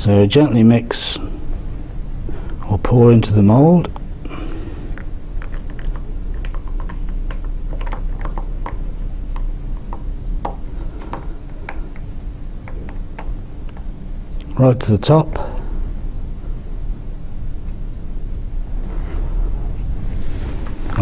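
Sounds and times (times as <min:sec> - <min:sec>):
steady low hum: 0:00.0 - 0:21.0
plaster slurry clicking and plopping: 0:05.0 - 0:13.9.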